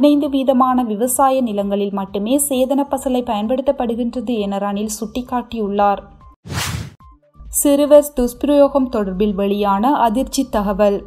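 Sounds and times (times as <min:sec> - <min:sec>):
whoosh transition: 0:06.5 - 0:07.0.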